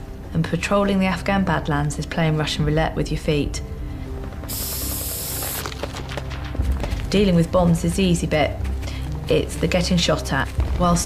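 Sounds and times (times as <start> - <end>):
background music: 0.0 - 11.0
aerosol spray can hissing: 4.5 - 5.8.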